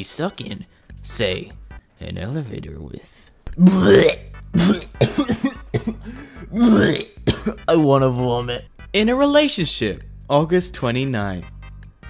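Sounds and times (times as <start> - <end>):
quiet background music: 0.0 - 12.0
person coughing: 3.6 - 7.6.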